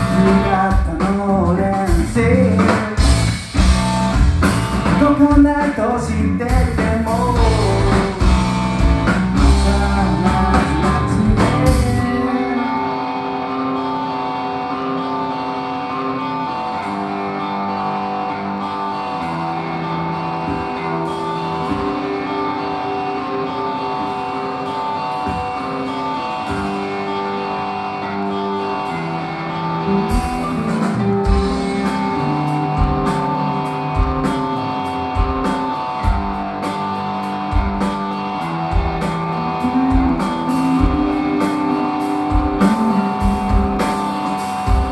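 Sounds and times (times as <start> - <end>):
drum kit with cymbals: 0.0 - 12.4, 29.9 - 44.9
electric guitar and bass: 0.0 - 44.9.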